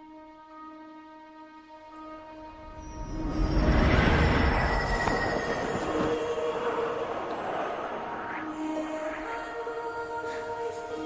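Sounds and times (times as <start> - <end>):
loud rumbling rush: 3.0 - 9.8.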